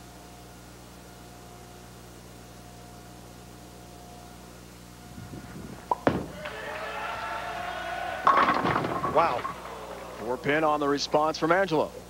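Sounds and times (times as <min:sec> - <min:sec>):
bowling ball rolling: 0:05.3 - 0:10.9
bowling ball thudding on lane: 0:05.9 - 0:06.6, 0:08.2 - 0:10.2.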